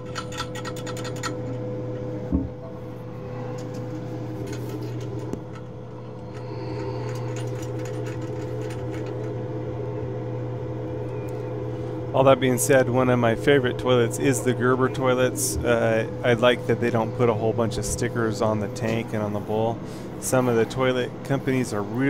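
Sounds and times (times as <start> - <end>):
steady low hum: 0.0 - 22.0.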